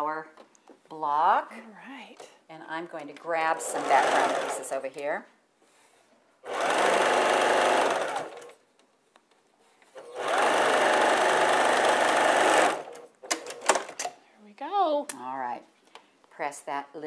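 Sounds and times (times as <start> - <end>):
electric sewing machine stitching: 3.3 - 4.8, 6.4 - 8.6, 10.0 - 13.1.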